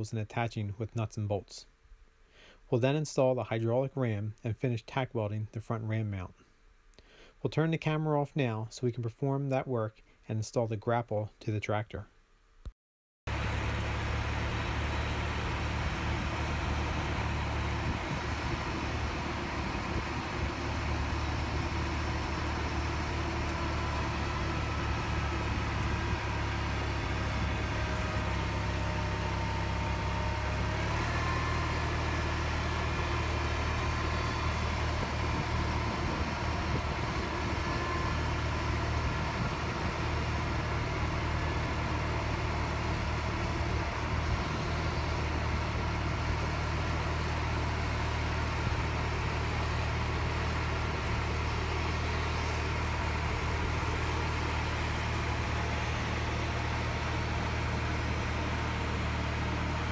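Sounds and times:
garden tractor engine running: 13.3 - 59.9.

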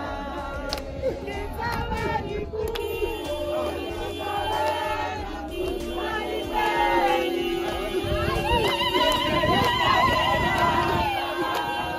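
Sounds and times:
crowd voices: 0.0 - 11.9.

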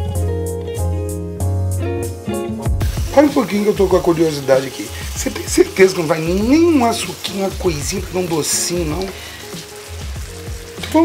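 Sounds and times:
food sizzling in a frying pan: 2.7 - 11.0.

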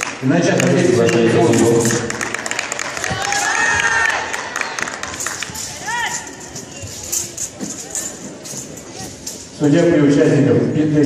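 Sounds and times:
murmur of voices: 0.2 - 11.0.

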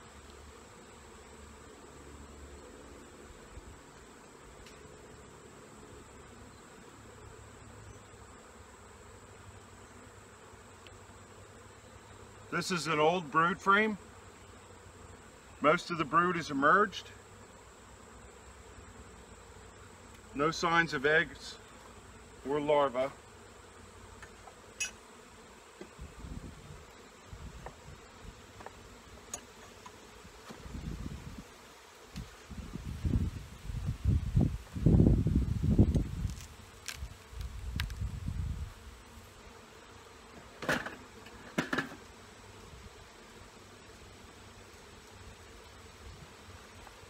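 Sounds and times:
bees buzzing: 0.0 - 47.0.

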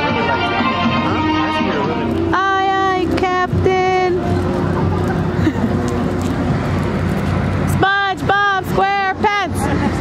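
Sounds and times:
outdoor low hum: 0.0 - 10.0.

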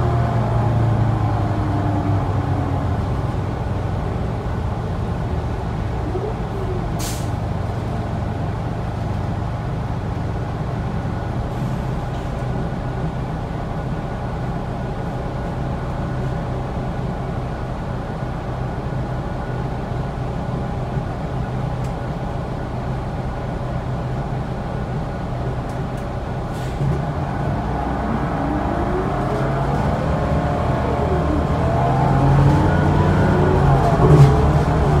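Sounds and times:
bus engine hum: 0.0 - 35.0
road noise: 0.0 - 35.0.

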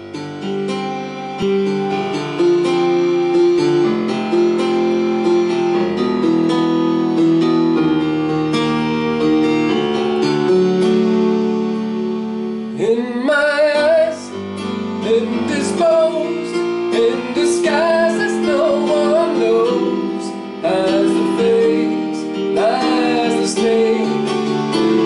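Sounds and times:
electronic keyboard chords: 0.0 - 25.0
man singing: 12.7 - 14.4, 15.0 - 25.0.

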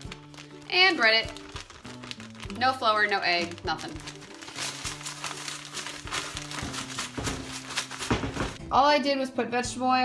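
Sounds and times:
plastic bag crinkling: 0.0 - 8.6
background music: 0.0 - 10.0.

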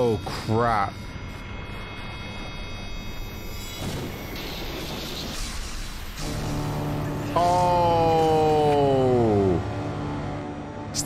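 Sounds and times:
steady low drone with hiss: 0.0 - 11.0.

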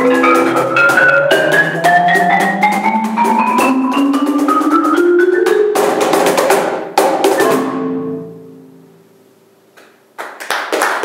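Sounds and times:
marimba playing: 0.0 - 8.9
cajon drum hits: 5.7 - 7.9
applause: 9.8 - 11.0.

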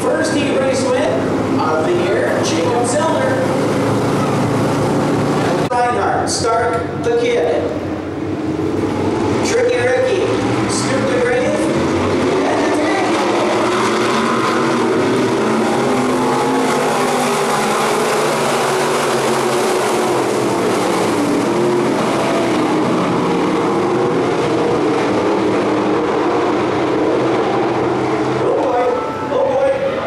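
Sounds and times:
race car engines: 0.0 - 30.0.

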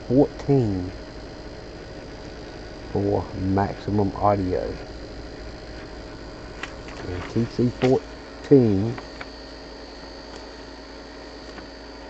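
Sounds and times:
radio receiver hiss and hum: 0.0 - 12.0.

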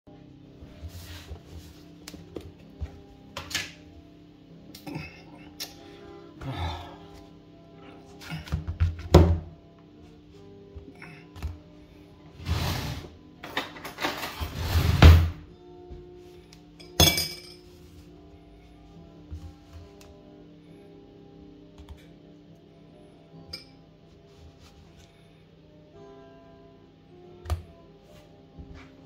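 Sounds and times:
background music: 0.1 - 29.0
metal utensil clink: 16.8 - 17.6.

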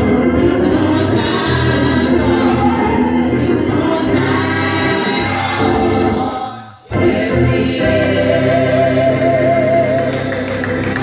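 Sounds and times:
congregation singing gospel song: 0.0 - 11.0.

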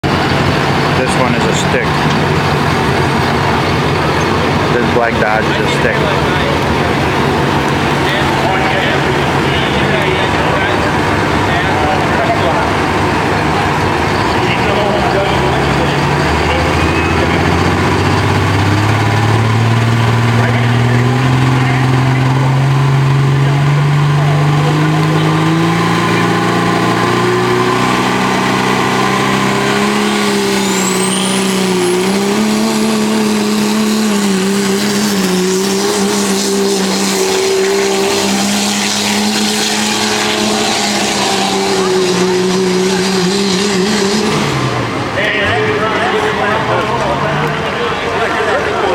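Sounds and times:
diesel engine labouring: 0.0 - 48.9
turbo whistle: 28.9 - 32.1.

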